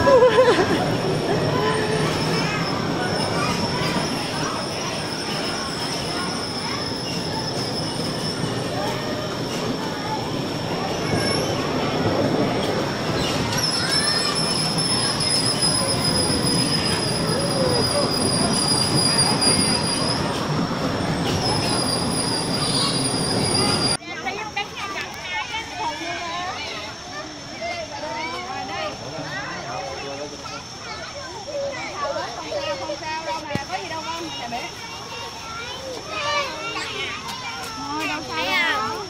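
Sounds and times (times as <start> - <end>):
bumper cars rolling with whine: 0.0 - 24.0
outdoor ambience: 0.0 - 39.0.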